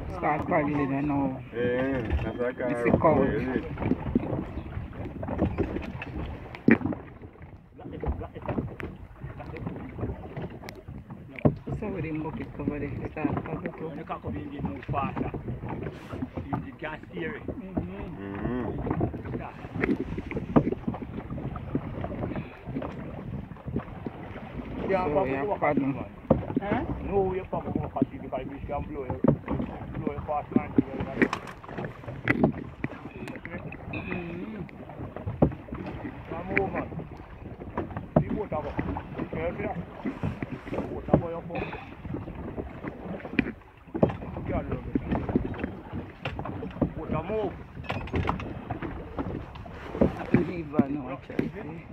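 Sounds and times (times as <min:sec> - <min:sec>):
water noise of paddled boat: 0:00.0 - 0:51.9
wind rumbling on microphone: 0:00.0 - 0:51.9
knocks on boat hull: 0:29.1 - 0:34.0.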